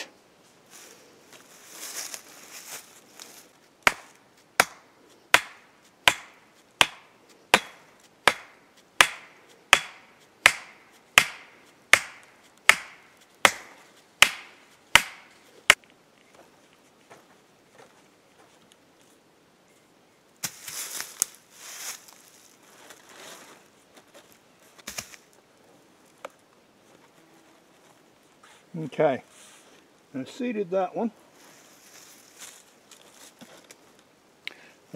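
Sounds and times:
rustling: 0.0 - 30.0, 31.2 - 34.1
drive hammer striking steel stake: 3.9 - 15.4.

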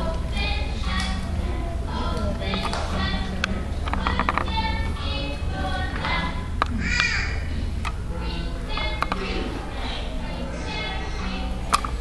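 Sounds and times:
child's high-pitched cry: 6.8 - 7.5.

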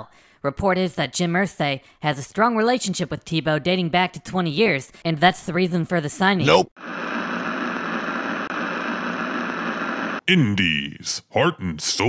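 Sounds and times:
radio static hiss: 6.4 - 10.2.

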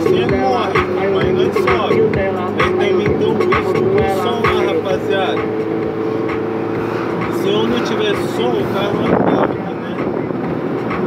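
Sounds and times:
car engine and road noise: 0.0 - 11.0
song on car stereo: 0.0 - 11.0.

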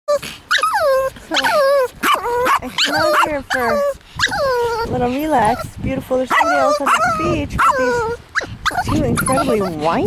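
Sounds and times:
small dogs whining: 0.1 - 10.0.

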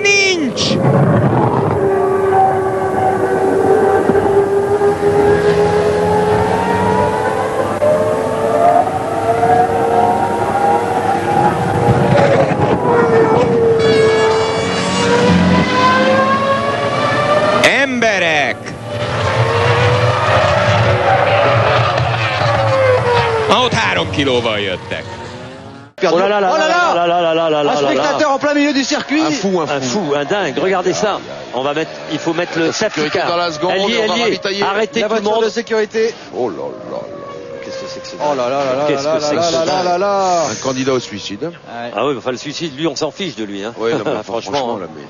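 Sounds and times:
racing car engines: 0.6 - 45.0
car passing close by: 0.8 - 26.0.

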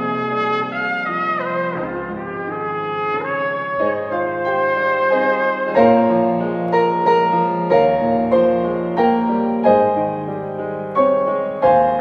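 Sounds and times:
trumpet slow melody: 0.0 - 10.3
piano chords: 0.0 - 12.0.

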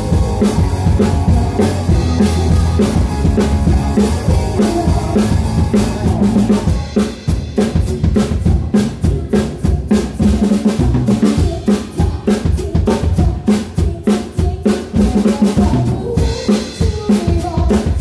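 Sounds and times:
bass line: 0.0 - 11.6
drum kit playing fast: 0.0 - 18.0.

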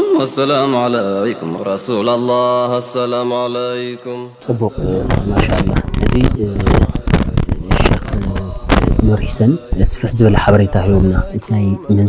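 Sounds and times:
man chanting devotional song: 0.0 - 12.0
sharp percussive beats: 4.8 - 11.2.

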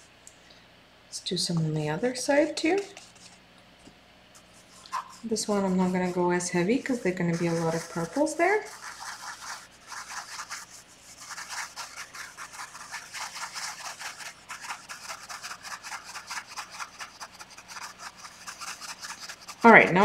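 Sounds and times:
paintbrush scratching on canvas: 2.4 - 3.4, 4.4 - 20.0.

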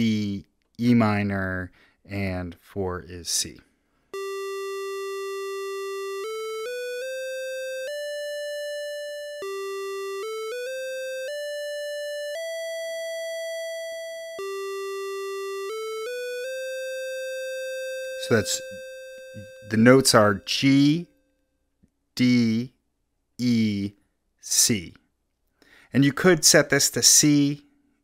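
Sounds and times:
buzzy synthesizer tone stepping pitch: 4.2 - 21.0.

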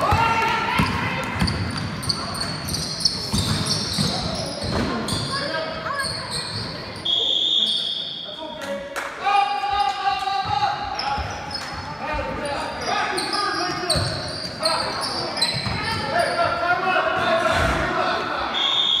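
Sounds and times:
sneakers squeaking: 0.0 - 8.4, 9.7 - 16.6.

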